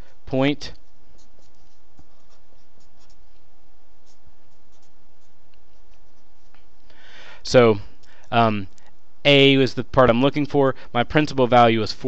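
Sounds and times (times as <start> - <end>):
steady background hiss: 0.0 - 12.0
marker pen scratching on paper: 0.8 - 6.7.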